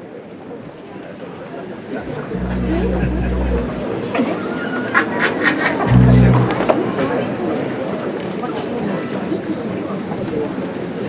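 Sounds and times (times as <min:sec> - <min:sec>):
deep sustained low tone: 0:02.0 - 0:04.3, 0:05.9 - 0:07.4.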